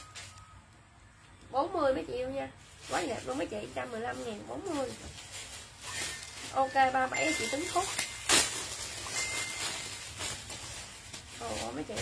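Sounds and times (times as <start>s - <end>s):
clothing and plastic rustling: 0.0s - 0.7s, 1.5s - 12.0s.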